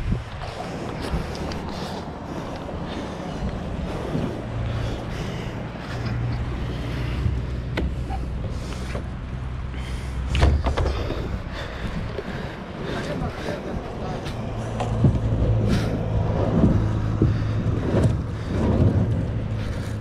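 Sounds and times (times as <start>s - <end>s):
low motor hum: 0.0s - 20.0s
kayak scraping over concrete: 12.1s - 20.0s.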